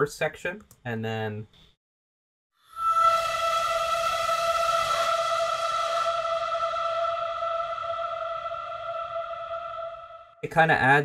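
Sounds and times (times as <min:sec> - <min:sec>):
distorted vocal sample held note: 0:02.8 - 0:10.4.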